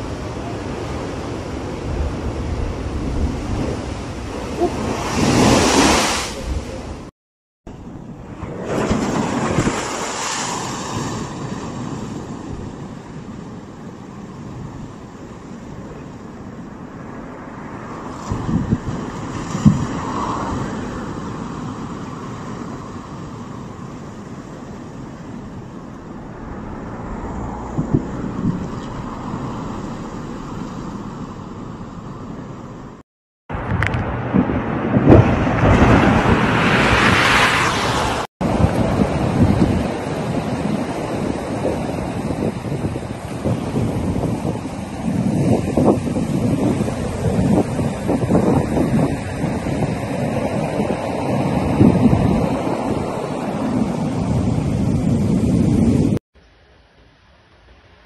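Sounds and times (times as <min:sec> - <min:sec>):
waves breaking against seawall: 0:00.0 - 0:07.1, 0:08.2 - 0:16.7, 0:17.6 - 0:32.1, 0:33.8 - 0:56.0
wind buffeting microphone: 0:00.0 - 0:07.1, 0:07.8 - 0:56.2.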